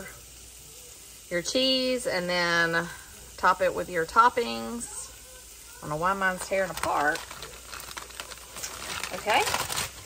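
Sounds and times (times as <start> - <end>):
food sizzling in a frying pan: 0.0 - 10.0.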